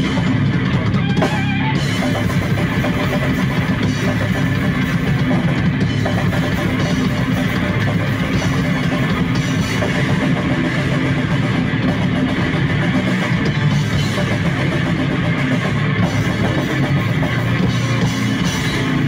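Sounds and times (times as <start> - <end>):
amplified electric guitar: 0.0 - 19.0
drum kit: 0.0 - 19.0.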